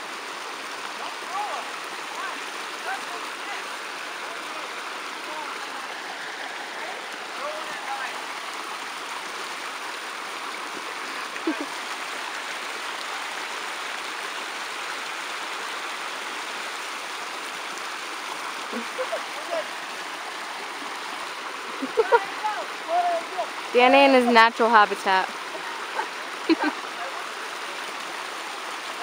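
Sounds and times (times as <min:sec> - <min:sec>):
creek water rushing over rocks: 0:00.0 - 0:29.0.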